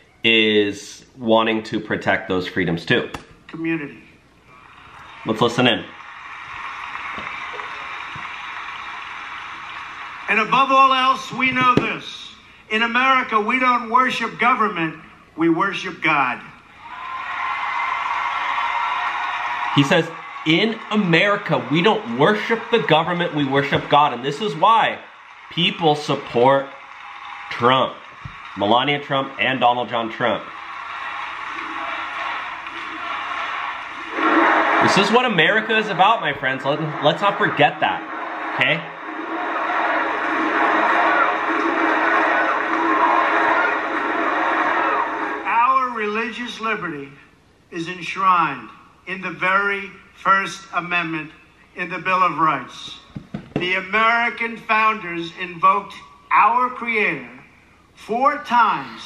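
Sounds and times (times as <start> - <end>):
audience applauding: 4.6 - 11.6, 16.8 - 45.5.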